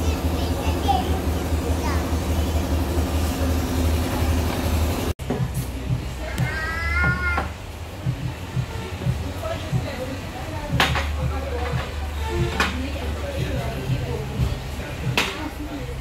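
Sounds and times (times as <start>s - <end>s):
cafe room noise hum: 0.0s - 16.0s.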